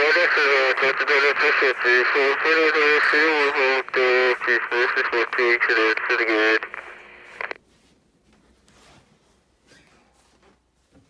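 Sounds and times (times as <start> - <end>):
voice: 0.0 - 7.0.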